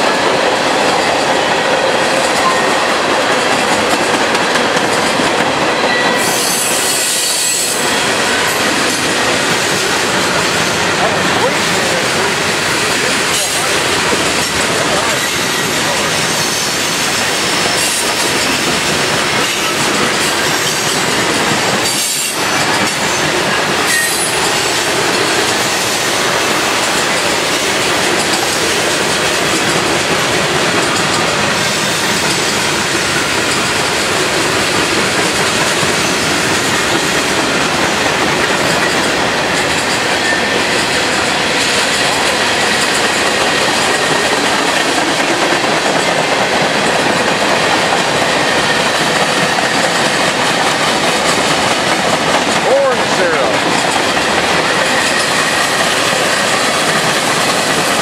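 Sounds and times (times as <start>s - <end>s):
clickety-clack over rail joints: 0.0s - 58.0s
freight train wheels rumbling: 0.0s - 58.0s
high wheel squeal: 5.9s - 8.1s, 16.2s - 18.6s, 23.9s - 24.5s.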